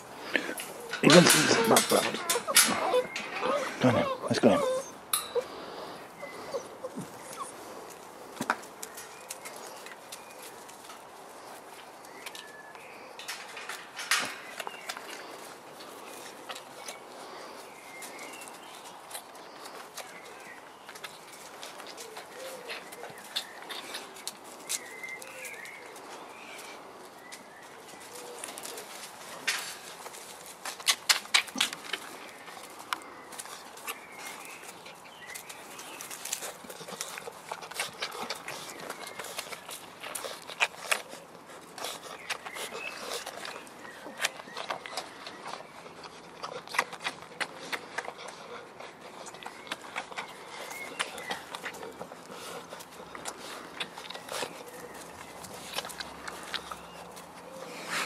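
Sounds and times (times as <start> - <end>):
rustling: 0.0 - 58.0
low coo-like calls: 0.4 - 5.5, 22.0 - 23.4
faint animal squeaks: 1.5 - 5.4.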